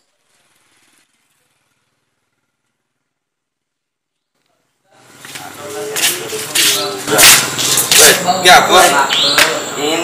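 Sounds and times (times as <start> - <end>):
people talking: 4.4 - 10.0.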